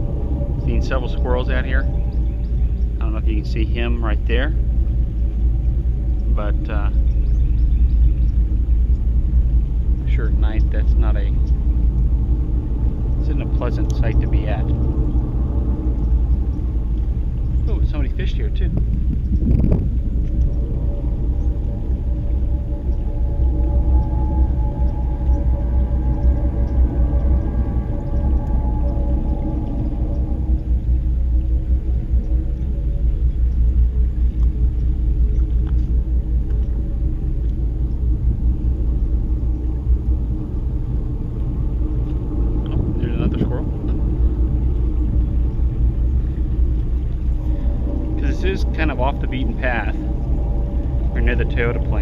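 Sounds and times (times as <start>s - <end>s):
faint pitched hum: 0.0s - 52.0s
steady low rumble: 0.0s - 52.0s.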